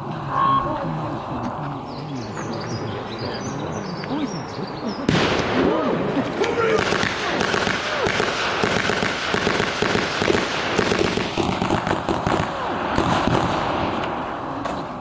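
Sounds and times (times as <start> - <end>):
voices: 0.0 - 15.0
rifle gunshots: 5.1 - 6.0, 6.6 - 14.4.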